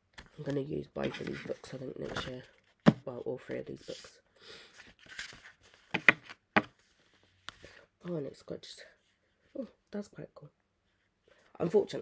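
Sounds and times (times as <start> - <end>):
paper rustling: 0.2 - 2.8, 4.8 - 7.8
books knocking on table: 5.9 - 6.7.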